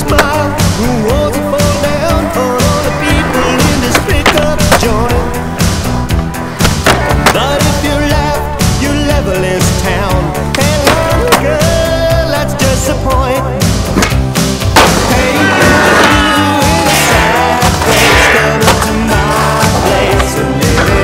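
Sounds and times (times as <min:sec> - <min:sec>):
loud music: 0:00.0 - 0:21.0
skateboard hitting and grinding: 0:03.0 - 0:07.5, 0:13.9 - 0:19.0.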